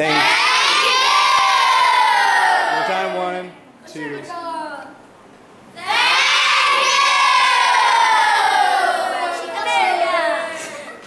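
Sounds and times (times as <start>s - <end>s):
children shouting together: 0.0s - 2.8s, 5.8s - 10.9s.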